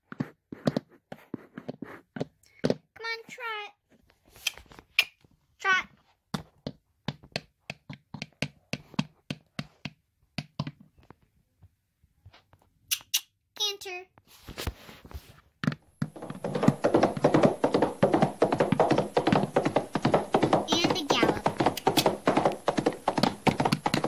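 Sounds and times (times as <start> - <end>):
toy hooves tapping on wooden floor: 0.0 - 2.9, 6.3 - 11.2, 15.6 - 24.0.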